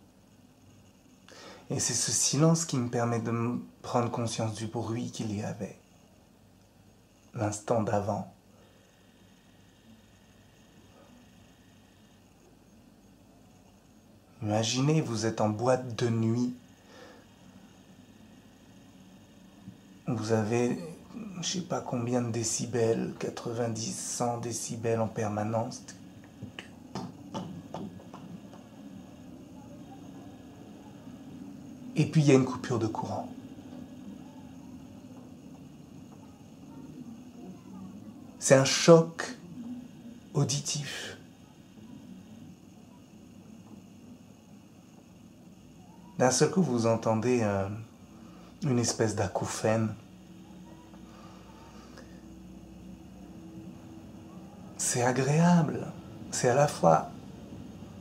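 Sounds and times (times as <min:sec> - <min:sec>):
faint low hum: 0:00.0 - 0:58.0.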